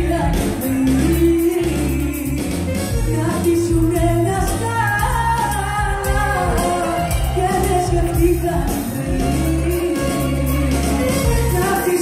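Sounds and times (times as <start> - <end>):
amplified band with bouzouki: 0.0 - 12.0
woman singing into a microphone: 0.0 - 12.0.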